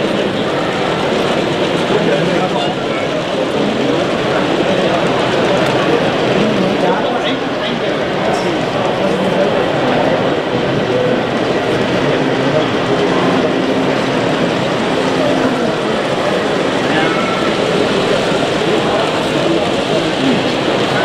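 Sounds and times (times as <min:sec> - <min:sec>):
crowd babble: 0:00.0 - 0:21.0.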